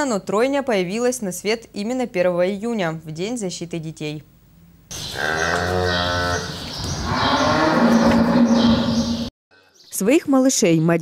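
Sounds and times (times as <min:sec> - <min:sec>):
cow mooing: 0:04.9 - 0:09.3.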